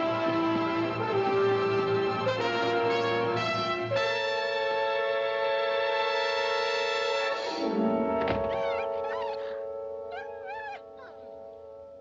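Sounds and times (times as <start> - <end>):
orchestral music: 0.0 - 12.0
dog crying: 7.3 - 11.4.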